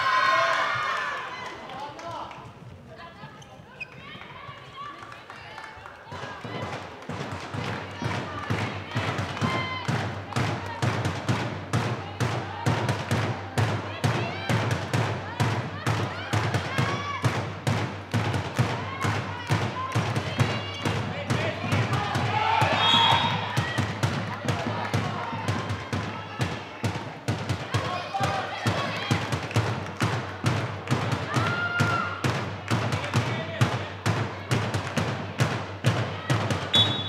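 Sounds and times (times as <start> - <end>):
players calling out: 18.8 - 29.6.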